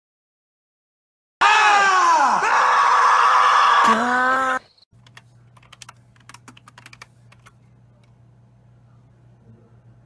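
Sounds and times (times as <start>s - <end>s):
loud wavering scream: 1.4s - 4.7s
computer keyboard typing and clicking: 5.0s - 8.2s
low electrical hum: 5.0s - 10.0s.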